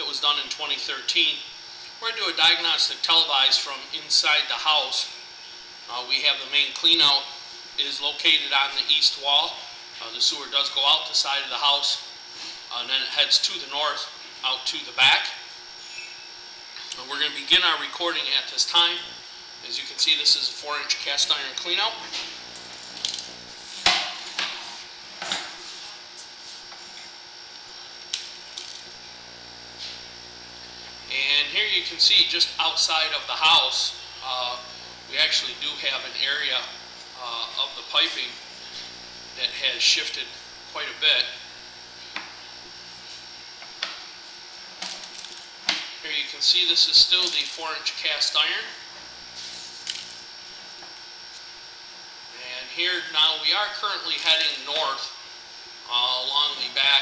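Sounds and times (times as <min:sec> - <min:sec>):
faint electrical hum: 0:00.0 - 0:57.0
steady hiss: 0:00.0 - 0:57.0.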